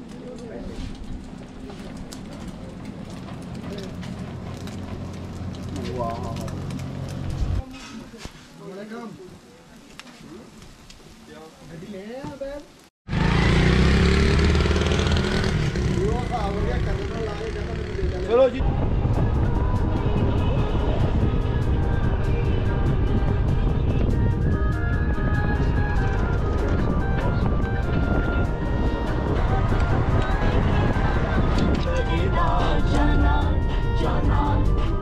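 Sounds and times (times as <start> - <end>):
low road rumble: 0.0 - 7.8, 13.1 - 35.0
motorcycle passing: 0.6 - 7.6, 13.1 - 23.5, 25.5 - 35.0
background music: 18.6 - 35.0.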